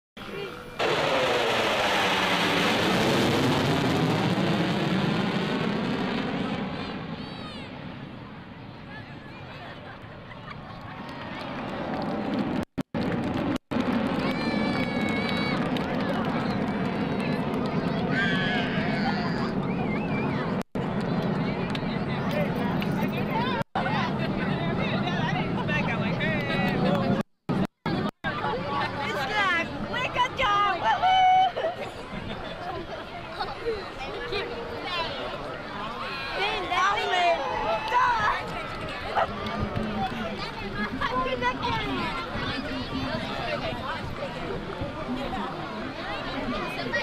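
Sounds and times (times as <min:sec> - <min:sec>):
crowd chattering: 0:00.2 - 0:12.6, 0:13.9 - 0:47.0
jet low pass roar: 0:00.2 - 0:28.7.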